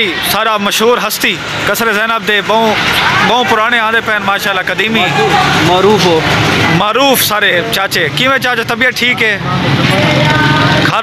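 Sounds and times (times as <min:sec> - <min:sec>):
people talking: 0:00.0 - 0:11.0
truck engine passing: 0:00.0 - 0:11.0.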